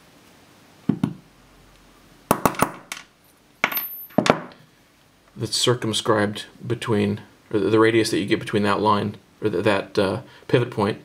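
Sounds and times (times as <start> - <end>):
metal parts clinking on wood: 2.9 - 4.5.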